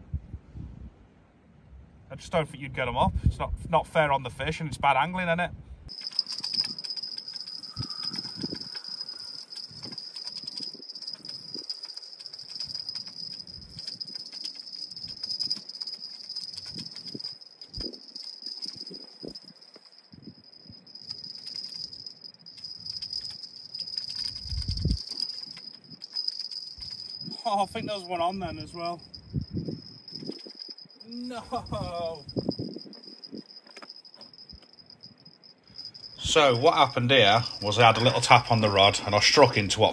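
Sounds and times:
wind buffeting microphone: 0.0 - 2.0, 3.0 - 3.8, 5.5 - 33.7
insects chirring: 5.9 - 39.9.

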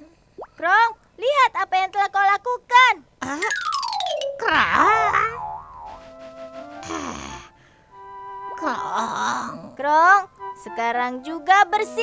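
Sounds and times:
wobbling tone: 3.4 - 6.6
soft background music: 3.7 - 12.0
falling whistle glide: 4.5 - 6.8.

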